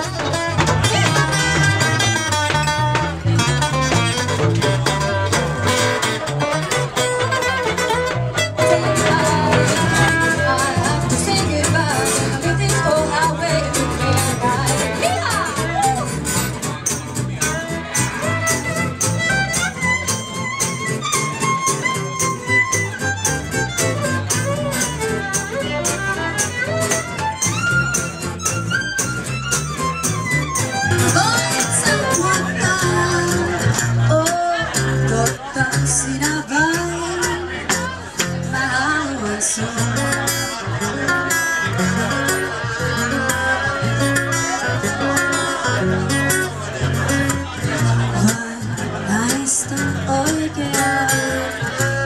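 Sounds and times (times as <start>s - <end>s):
fiddle melody: 0.0s - 52.0s
plucked double bass: 0.0s - 52.0s
strummed acoustic guitar: 0.0s - 52.0s
violin: 0.0s - 52.0s.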